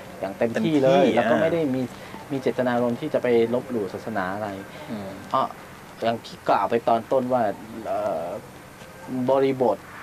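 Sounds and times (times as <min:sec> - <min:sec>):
man's voice: 0:00.4 - 0:03.6.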